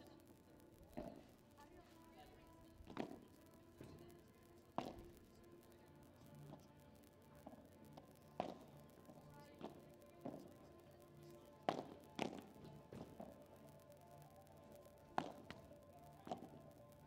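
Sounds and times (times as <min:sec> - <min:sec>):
faint background music: 0:00.0 - 0:17.0
rackets hitting balls: 0:04.8 - 0:05.1, 0:08.0 - 0:10.5, 0:11.6 - 0:13.5, 0:15.1 - 0:16.6.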